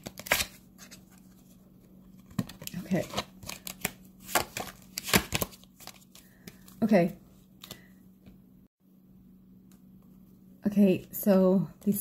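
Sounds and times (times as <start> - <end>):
cards shuffling and snapping: 0.0 - 1.2, 2.2 - 6.7.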